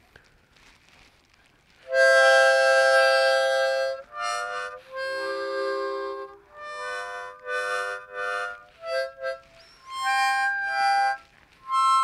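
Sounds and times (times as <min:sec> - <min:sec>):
harmonica chord: 0:01.8 - 0:12.0.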